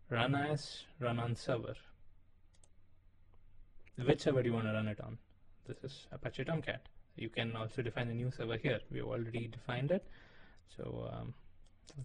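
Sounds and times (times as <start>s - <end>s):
faint mouse clicks: 2.5s - 4.0s, 11.6s - 12.0s.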